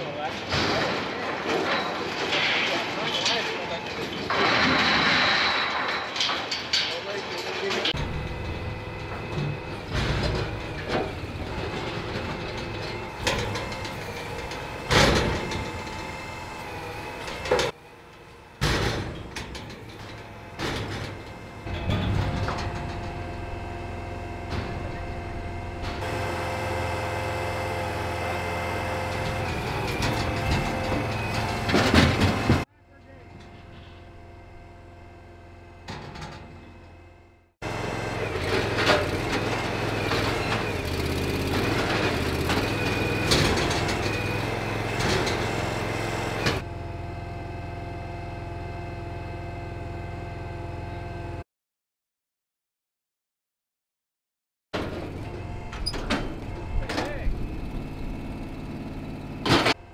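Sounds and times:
steel gates clanking: 0.0 - 32.7, 54.8 - 58.7
hydraulic power unit running: 3.7 - 51.4, 54.8 - 59.9.

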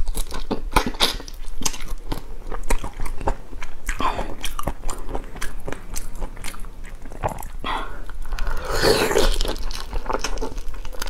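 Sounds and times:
prawn shell crunching: 8.1 - 11.0.

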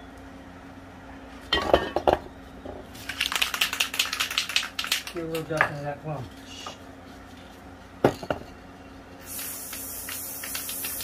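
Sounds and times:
spray can hissing: 9.2 - 11.0.

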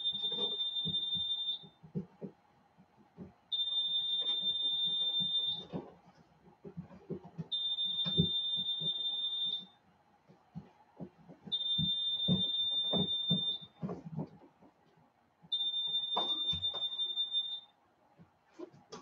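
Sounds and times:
high-pitched electronic alarm beeps: 0.0 - 1.6, 11.6 - 13.7, 15.5 - 17.7
handling knocks and rustles: 0.1 - 9.1, 10.2 - 15.1.

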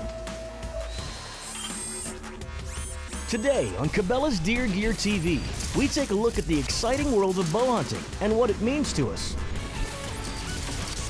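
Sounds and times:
high buzzing whir: 0.0 - 6.4.

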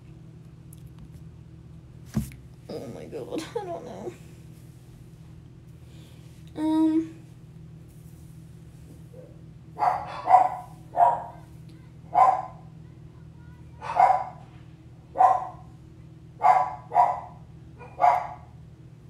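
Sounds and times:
steady low hum: 0.0 - 19.0
dog barking: 9.2 - 11.4, 12.1 - 12.7, 13.8 - 14.4, 15.1 - 15.7, 16.4 - 18.5.

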